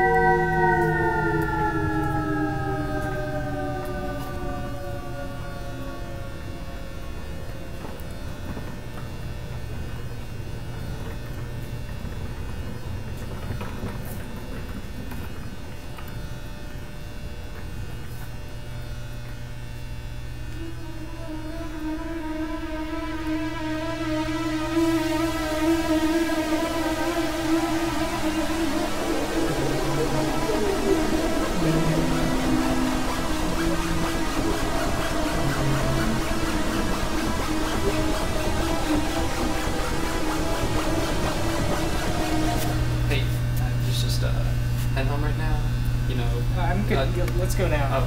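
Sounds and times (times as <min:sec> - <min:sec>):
sliding held tones: 0:00.0 - 0:06.5
low steady drone: 0:00.0 - 0:48.0.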